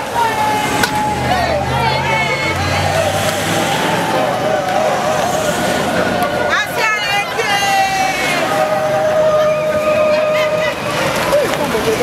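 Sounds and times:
car engines passing: 0:00.0 - 0:12.0
crowd calling out: 0:00.0 - 0:12.0.

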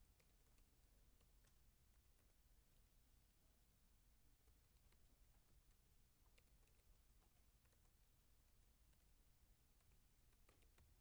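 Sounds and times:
typing on laptop keyboard: 0:00.0 - 0:02.8, 0:04.3 - 0:11.0.

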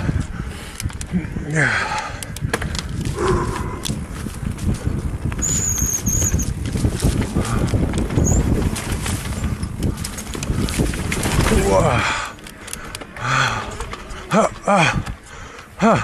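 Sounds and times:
wind on microphone: 0:00.0 - 0:14.2
bike rattling over ground: 0:00.0 - 0:15.8
brake squeal: 0:05.4 - 0:06.6.

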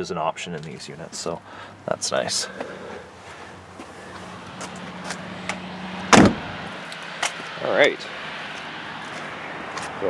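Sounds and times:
loud thump: 0:06.1 - 0:06.6.

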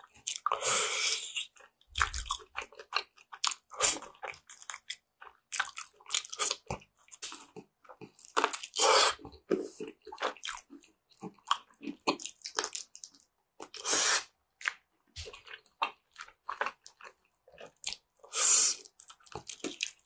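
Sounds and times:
wet chewing and biting: 0:01.3 - 0:13.8, 0:14.6 - 0:18.1, 0:18.8 - 0:20.0.

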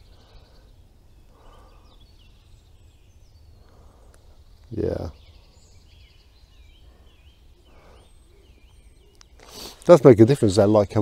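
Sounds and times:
low wind rumble: 0:00.0 - 0:09.4
songbird chirping: 0:00.0 - 0:11.0.

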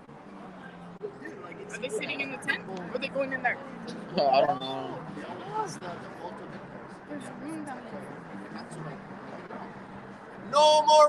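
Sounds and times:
city street noise: 0:00.0 - 0:11.0
faint voices: 0:00.0 - 0:11.0.

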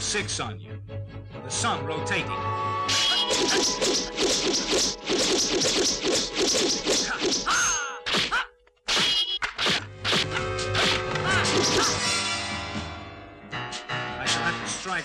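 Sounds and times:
film music score: 0:00.0 - 0:08.5, 0:09.4 - 0:15.0
whacks and swishes of blows: 0:02.9 - 0:12.0.

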